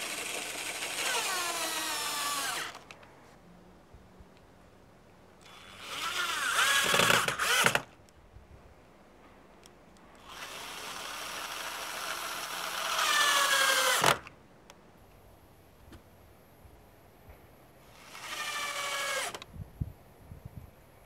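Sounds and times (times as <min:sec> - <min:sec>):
cordless drill driving screws: 0:00.0 - 0:03.0, 0:05.4 - 0:07.9, 0:10.2 - 0:14.3, 0:17.9 - 0:19.4.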